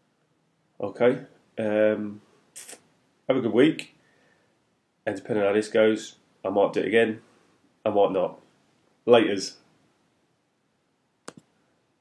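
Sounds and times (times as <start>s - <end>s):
sharp clicks: 11.2s - 11.5s.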